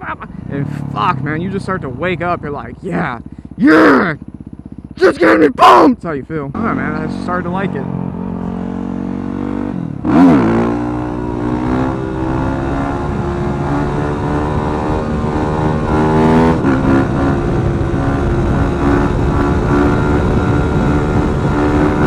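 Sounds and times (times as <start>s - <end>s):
motorcycle engine revving: 0.0s - 22.0s
wind rushing over microphone: 10.8s - 22.0s.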